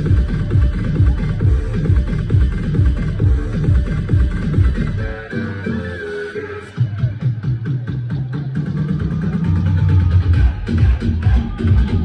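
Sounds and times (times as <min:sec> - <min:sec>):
fast percussion beat: 0:00.0 - 0:05.0, 0:06.8 - 0:12.0
electronic dance music: 0:00.0 - 0:12.0
heavy bass line: 0:00.0 - 0:12.0.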